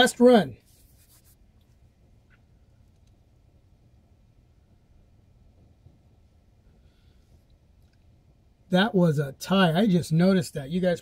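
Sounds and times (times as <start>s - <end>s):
faint click: 2.3s - 3.2s.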